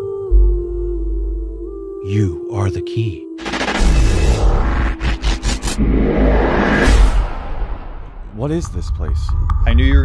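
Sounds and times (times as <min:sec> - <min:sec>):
sharp glitchy hits: 0:03.4 - 0:08.1
whoosh: 0:03.4 - 0:08.5
deep rumble: 0:03.4 - 0:10.0.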